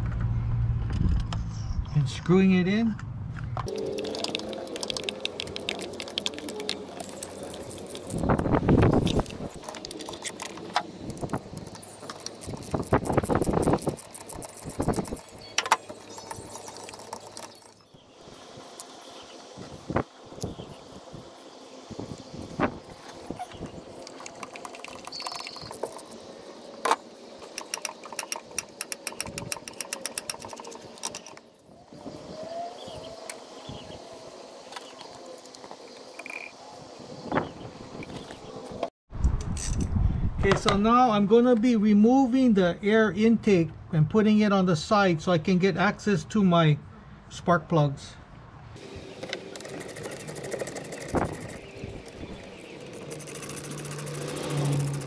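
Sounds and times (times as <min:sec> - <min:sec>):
hand ratchet clicking: 0:09.0 - 0:17.6, 0:27.5 - 0:31.4, 0:52.8 - 0:55.0.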